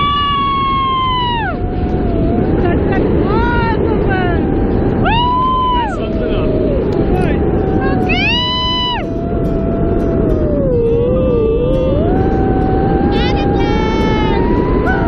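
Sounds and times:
people whooping and squealing: 0.0 - 15.0
wind rumbling on microphone: 0.0 - 15.0.

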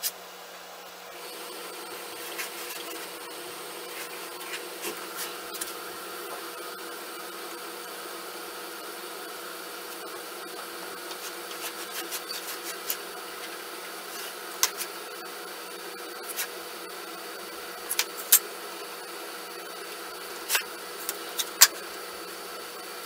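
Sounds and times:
machine noise with hum: 0.0 - 23.0.

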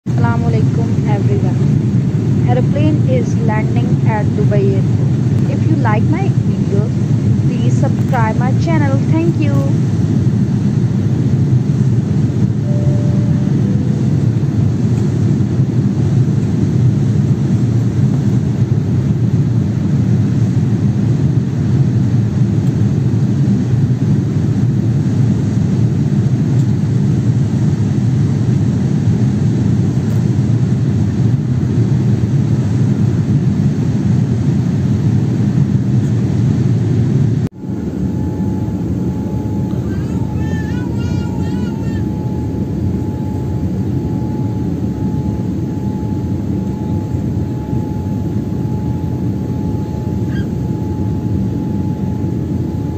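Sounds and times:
faint steady whine: 0.1 - 23.9, 35.6 - 52.9
jet airliner cabin roar: 0.1 - 52.9.

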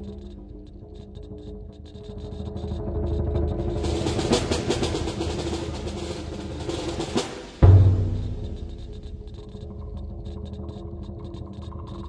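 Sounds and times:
snare drum roll: 3.8 - 9.4.

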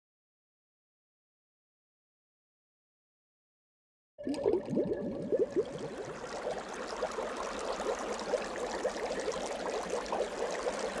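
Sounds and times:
water bubble blips: 4.2 - 11.0.

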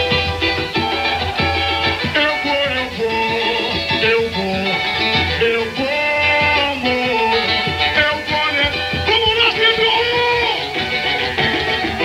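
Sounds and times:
samba drum section beat: 0.0 - 12.0
samba melody: 0.0 - 12.0.

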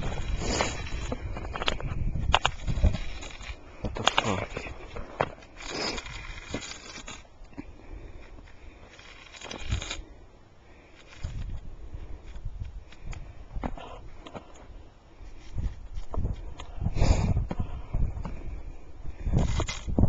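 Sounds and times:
stick scraping through snow: 0.0 - 7.3.

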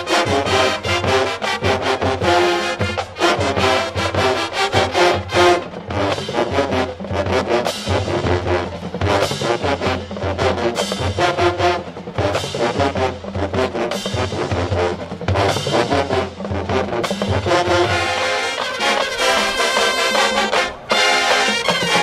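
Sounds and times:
bass and snare drumline beat: 0.0 - 22.0
horn chords: 0.0 - 22.0.

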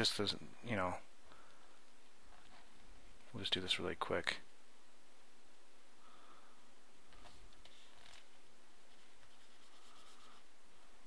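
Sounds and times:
steady hiss: 0.0 - 11.0
faint dry scratching: 2.2 - 3.4, 7.0 - 11.0.

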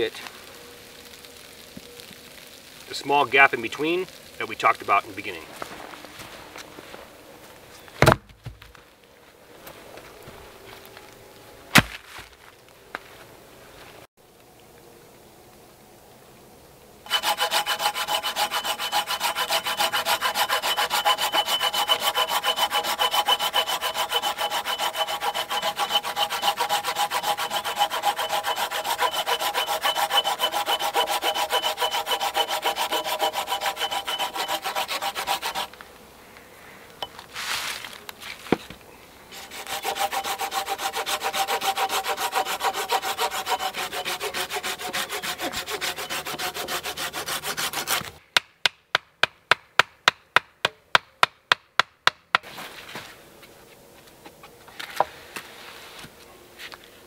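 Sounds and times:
hand saw cutting log: 17.1 - 35.8, 39.3 - 48.2.

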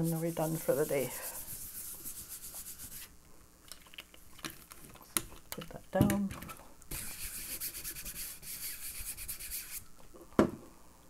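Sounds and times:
paper scrubbing strokes: 0.0 - 3.1, 6.9 - 9.8.

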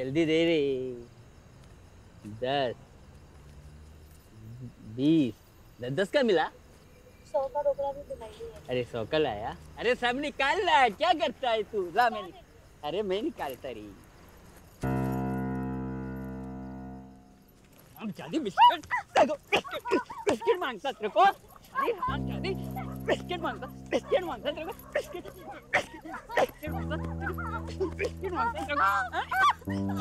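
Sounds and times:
held music chord: 14.8 - 17.5, 22.1 - 30.0
high-pitched yelping cries: 18.4 - 30.0
person making wordless vocal sounds: 22.0 - 30.0.

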